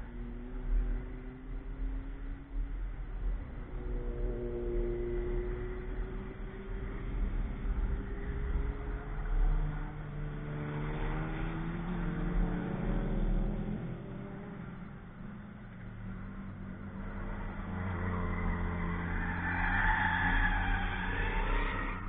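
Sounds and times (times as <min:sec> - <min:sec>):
race car engine revving: 0:03.4 - 0:15.3.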